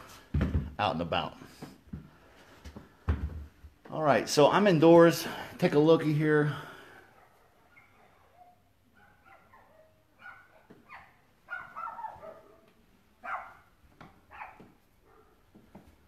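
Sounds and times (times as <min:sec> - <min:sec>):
dogs barking and yipping: 0:07.1 - 0:15.4.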